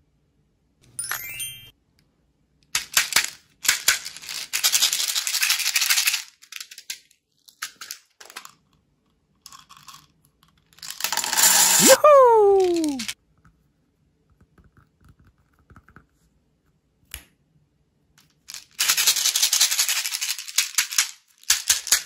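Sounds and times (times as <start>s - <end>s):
beads rattling in plastic bottle: 2.8s - 8.6s, 9.5s - 10.1s, 10.7s - 13.2s, 18.4s - 22.0s
plastic toy clicks: 18.8s - 22.0s.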